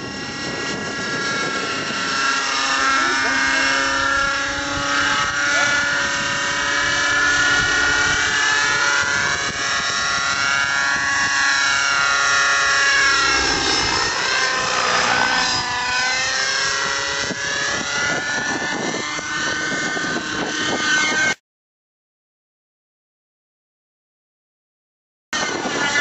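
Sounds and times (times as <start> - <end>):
rc helicopter engine and rotor whine: 0.0 - 21.4, 25.4 - 26.0.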